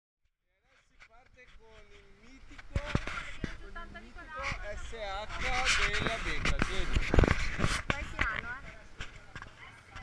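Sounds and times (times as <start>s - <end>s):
indistinct voices talking: 0.8s - 10.0s.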